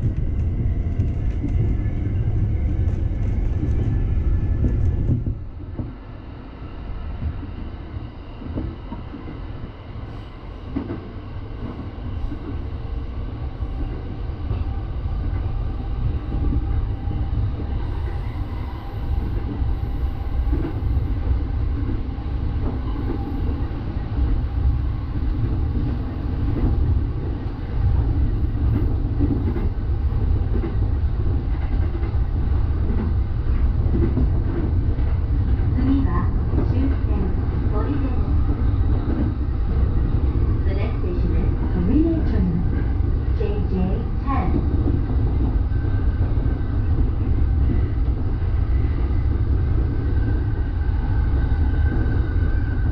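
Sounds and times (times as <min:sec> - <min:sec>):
train wheels rumbling: 0:00.0 - 0:06.3, 0:07.1 - 0:52.9.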